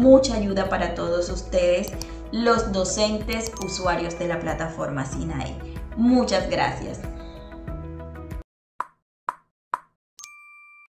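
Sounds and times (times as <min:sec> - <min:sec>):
background music: 0:00.0 - 0:08.4
bright two-tone chime: 0:03.4 - 0:05.2, 0:10.2 - 0:10.9.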